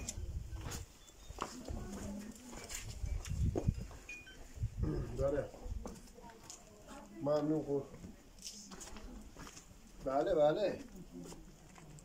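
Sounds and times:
voices: 0.0 - 3.4, 4.8 - 12.0
footsteps on pavement: 0.0 - 12.0.

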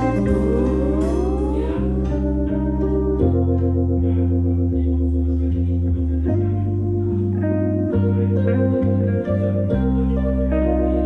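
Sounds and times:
slide guitar gliding up: 0.0 - 4.1
low bass line: 0.0 - 11.0
organ chords: 0.0 - 11.0.

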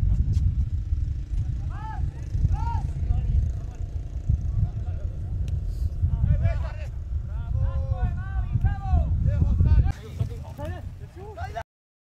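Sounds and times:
low rumble on microphone: 0.0 - 11.6.

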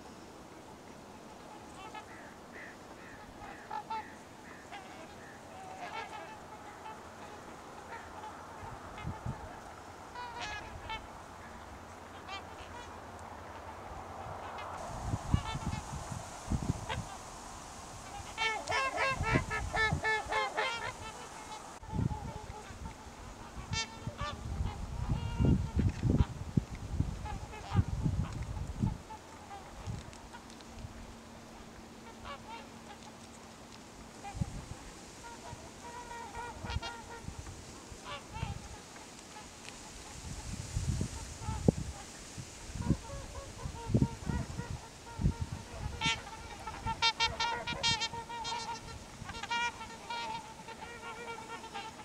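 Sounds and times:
swans honking: 1.2 - 26.4, 27.2 - 30.6, 31.4 - 52.0.

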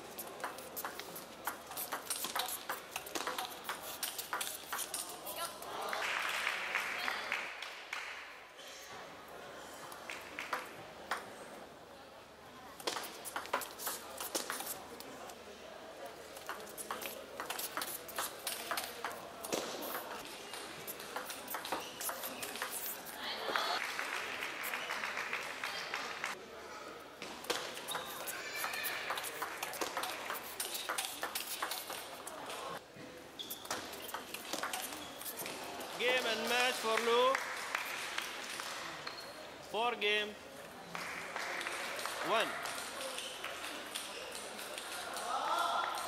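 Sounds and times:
faint murmur in hall: 0.0 - 46.0
table tennis ball clicking: 0.3 - 5.0.

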